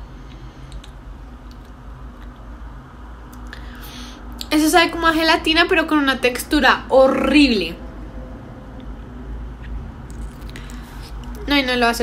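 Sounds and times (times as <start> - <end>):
faint mouth clicks: 0.3 - 2.4, 9.6 - 11.4.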